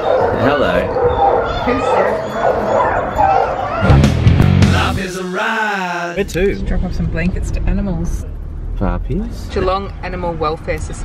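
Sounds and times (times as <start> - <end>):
dogs barking and yipping: 0.0 - 4.2.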